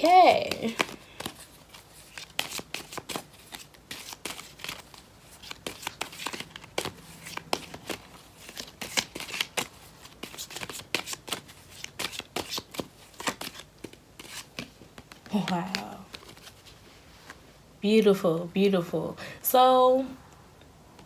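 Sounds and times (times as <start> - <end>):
cards being shuffled: 0.0 - 17.5.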